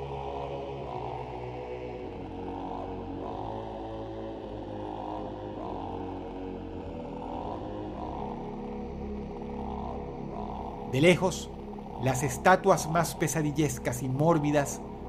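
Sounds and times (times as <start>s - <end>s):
dark droning background music: 0.0s - 15.0s.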